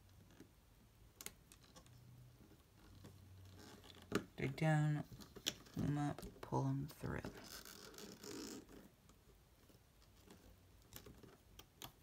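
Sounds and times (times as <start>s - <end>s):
small plastic clicks: 10.0s - 12.0s.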